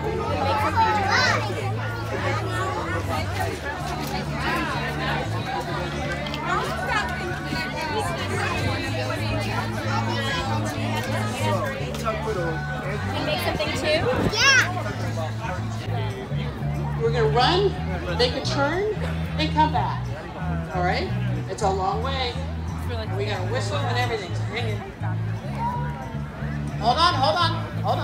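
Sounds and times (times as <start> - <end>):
children chattering and playing: 0.0 - 28.0
crowd babble: 0.0 - 28.0.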